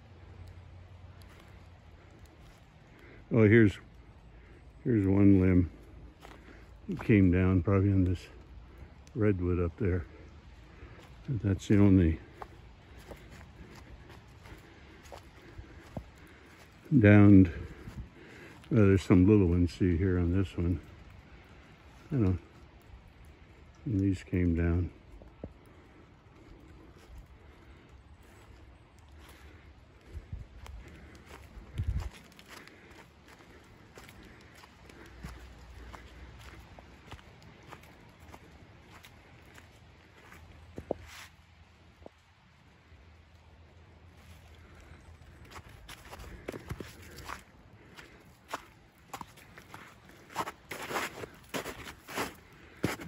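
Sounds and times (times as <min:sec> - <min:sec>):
footsteps on snow: 0:10.9 - 0:19.6, 0:30.2 - 0:41.4, 0:44.2 - 0:53.0.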